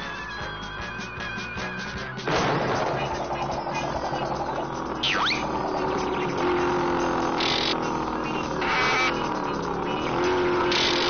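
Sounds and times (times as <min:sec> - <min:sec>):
busy orchestral cartoon music: 0:00.0 - 0:04.6.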